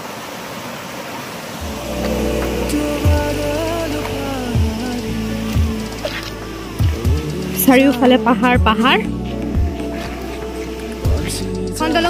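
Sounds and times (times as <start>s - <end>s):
stream rushing over rocks: 0.0s - 8.1s
background music with low notes: 1.6s - 12.0s.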